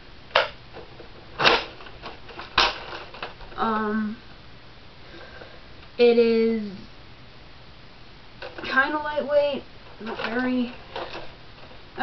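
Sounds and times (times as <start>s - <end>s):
sharp plastic clacks: 0.3s - 3.4s.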